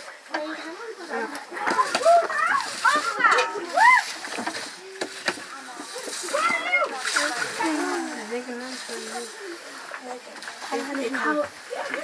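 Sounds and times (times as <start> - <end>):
eating from metal plates: 0.0 - 12.0
people talking: 0.0 - 12.0.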